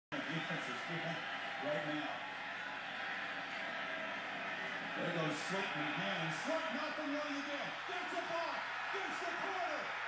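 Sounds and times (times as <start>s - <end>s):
stadium crowd noise: 0.1s - 10.0s
commentator speaking: 5.0s - 10.0s.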